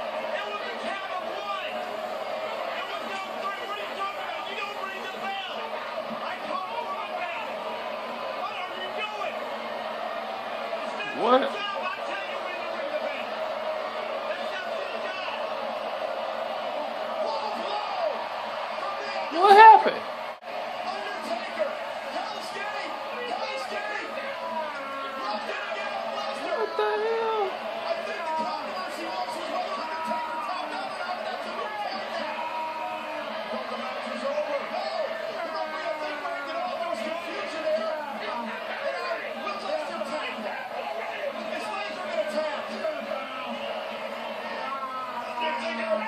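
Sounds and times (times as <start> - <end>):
arena crowd: 0.0 - 46.0
commentators talking: 10.9 - 13.2, 19.2 - 20.1, 22.3 - 32.2.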